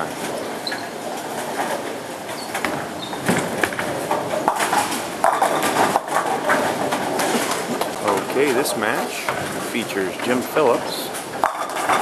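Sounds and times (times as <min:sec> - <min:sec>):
bowling balls rolling: 0:00.0 - 0:12.0
bowling pins clattering: 0:00.0 - 0:12.0.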